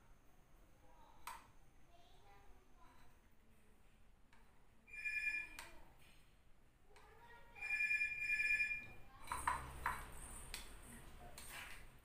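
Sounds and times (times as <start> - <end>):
electronic ringing tone: 4.9 - 5.6, 7.6 - 9.0.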